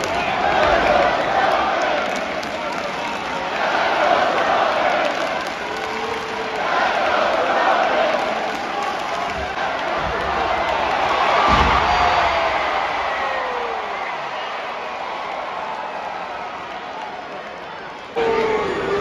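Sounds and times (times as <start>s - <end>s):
arena crowd cheering: 0.0s - 19.0s
crowd long falling shout: 0.0s - 19.0s.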